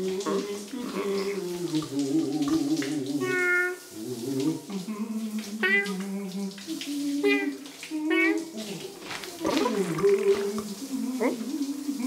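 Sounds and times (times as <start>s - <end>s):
water splashing in toilet bowl: 0.0s - 12.0s
cartoon cat vocal sound: 5.6s - 6.0s, 7.2s - 8.7s.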